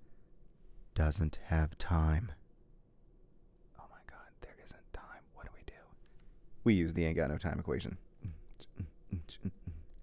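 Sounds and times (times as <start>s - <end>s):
man whispering: 3.7s - 6.0s, 7.8s - 10.0s.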